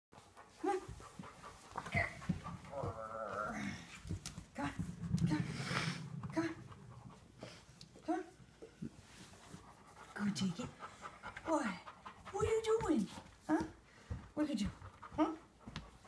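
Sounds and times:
dog panting: 0.2 - 16.0.

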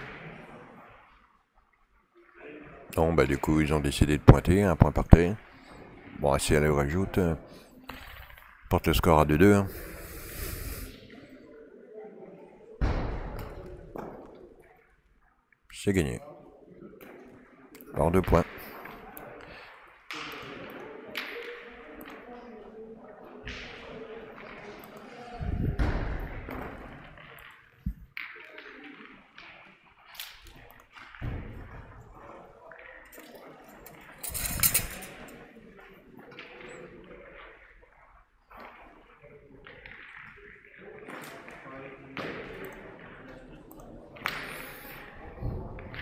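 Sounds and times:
indistinct voices in a hall: 0.0 - 46.0
metal boules clacking together: 33.1 - 35.4.

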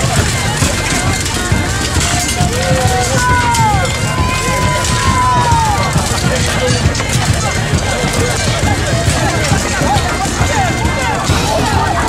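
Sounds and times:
crowd of voices shouting: 0.0 - 12.0.

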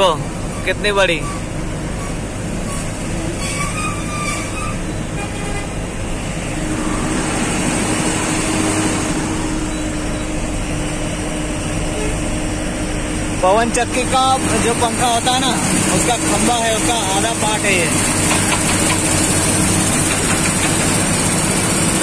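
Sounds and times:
road traffic noise: 0.0 - 22.0
truck engine: 0.0 - 22.0.

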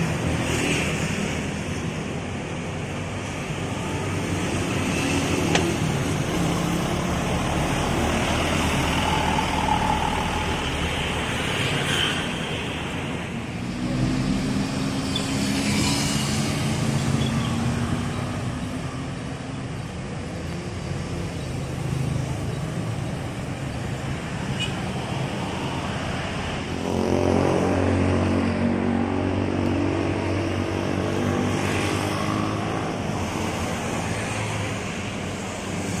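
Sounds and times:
cars passing: 0.0 - 36.0
heavy vehicle engine: 0.0 - 36.0
motorcycles passing: 0.0 - 36.0.

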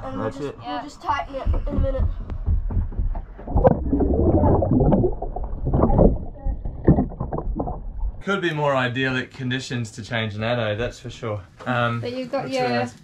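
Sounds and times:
water sloshing and bubbling: 2.7 - 8.2.

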